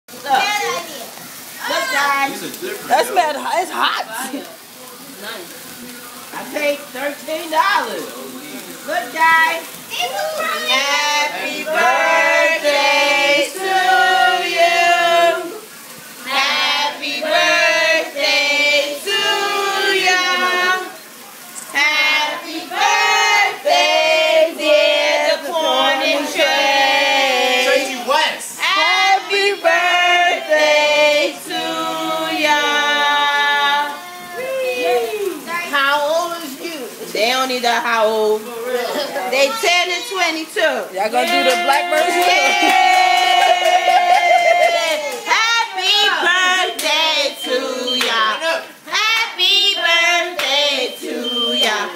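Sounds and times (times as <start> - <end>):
sparklers fizzing: 0.1 - 51.9
excited high-pitched voices: 9.1 - 12.5, 31.6 - 35.8
group of voices singing: 10.4 - 34.2, 41.2 - 51.9.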